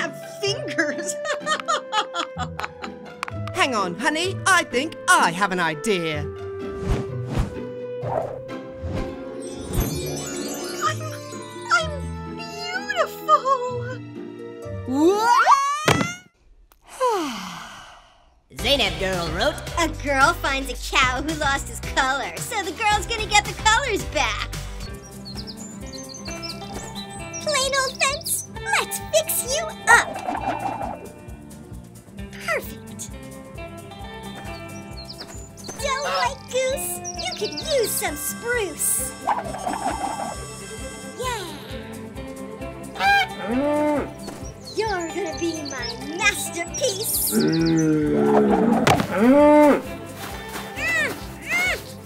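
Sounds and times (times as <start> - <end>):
background music with steady beat: 36.8 - 46.5
cartoon cow moo: 43.2 - 44.1, 47.3 - 49.9.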